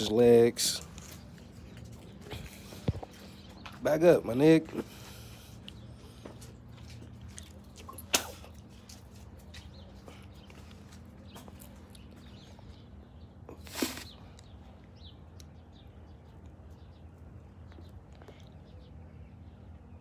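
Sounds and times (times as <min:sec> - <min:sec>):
footsteps on concrete: 0:00.6 - 0:12.8.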